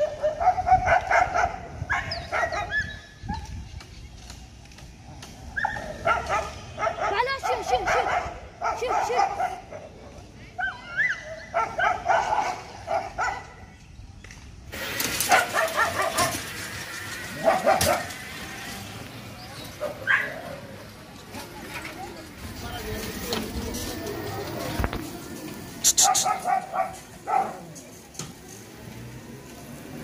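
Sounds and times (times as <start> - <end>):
dogs barking: 0.0 - 3.5, 5.6 - 9.9, 10.6 - 13.6, 15.2 - 18.3, 19.7 - 20.7, 25.8 - 27.7.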